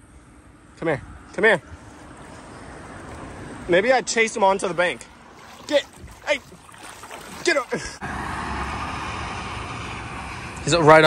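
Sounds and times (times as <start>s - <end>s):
road traffic hiss: 7.4s - 11.0s.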